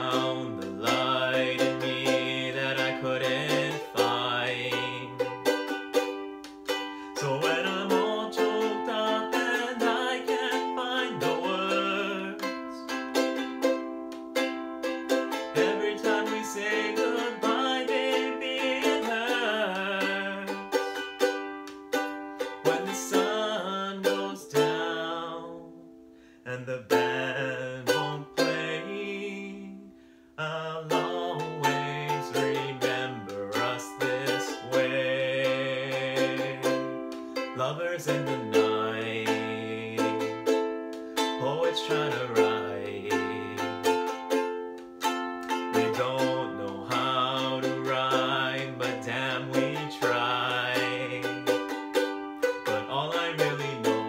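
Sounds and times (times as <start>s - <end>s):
ukulele strumming chords: 0.0s - 54.0s.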